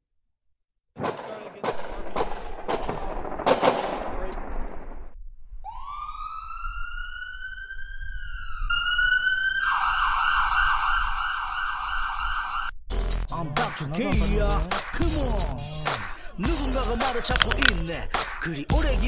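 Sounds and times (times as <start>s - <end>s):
siren wailing and yelping: 5.6s - 12.7s.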